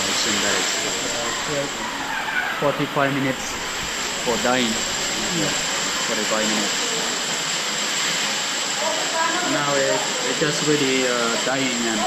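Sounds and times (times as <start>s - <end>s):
steady rushing hiss: 0.0s - 12.0s.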